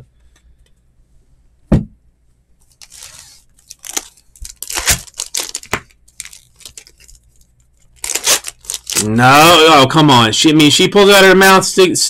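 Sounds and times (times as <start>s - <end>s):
foil wrapper tearing and crinkling: 2.7s - 9.2s.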